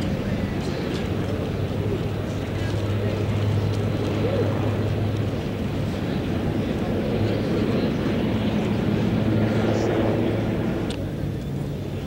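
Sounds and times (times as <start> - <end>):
helicopter flying away: 0.0 - 12.0.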